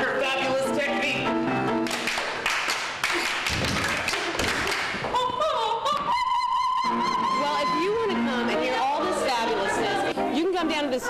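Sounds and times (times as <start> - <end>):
woman singing operatically: 5.2 - 11.0.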